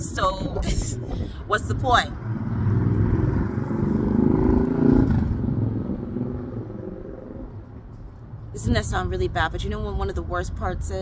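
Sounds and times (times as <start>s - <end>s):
vehicle driving past: 2.0s - 8.0s.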